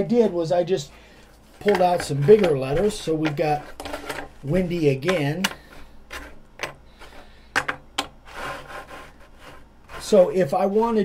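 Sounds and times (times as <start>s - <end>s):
wood scraping on wood: 1.5s - 7.4s, 8.2s - 10.9s.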